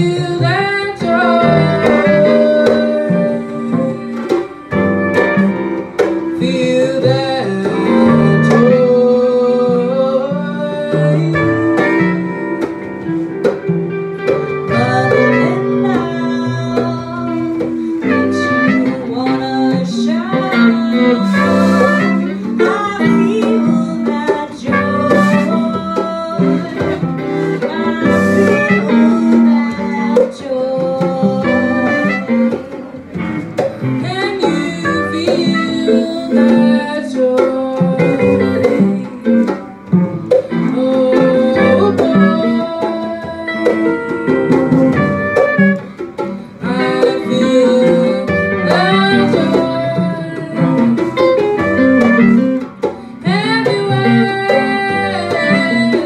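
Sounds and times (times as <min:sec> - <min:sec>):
guitars: 0:00.0 - 0:56.0
woman singing into a microphone: 0:00.0 - 0:56.0
trumpet: 0:01.0 - 0:10.1, 0:11.0 - 0:30.2, 0:31.2 - 0:37.4, 0:41.0 - 0:56.0.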